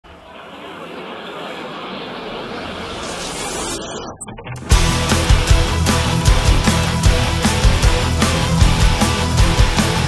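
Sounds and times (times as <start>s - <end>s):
rushing noise swell: 2.4s - 6.1s.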